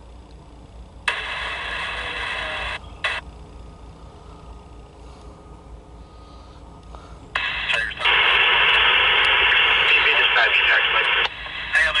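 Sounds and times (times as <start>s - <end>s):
noisy radio transmission: 1.0s - 3.3s, 7.3s - 12.0s
radio squelch burst: 1.1s - 3.2s, 7.4s - 12.0s.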